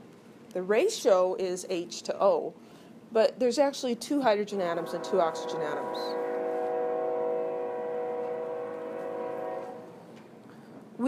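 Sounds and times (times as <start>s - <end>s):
train horn chord: 4.6s - 10.1s.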